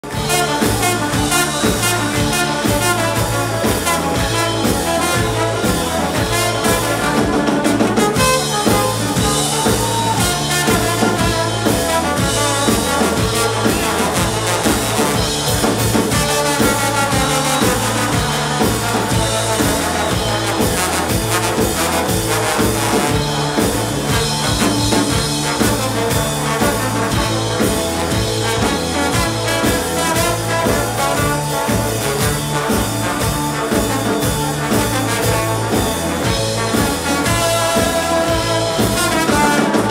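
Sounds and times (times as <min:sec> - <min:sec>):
bass line: 0:00.0 - 0:39.9
drum kit: 0:00.0 - 0:39.9
electric guitar: 0:00.0 - 0:39.9
trombone: 0:00.0 - 0:39.9.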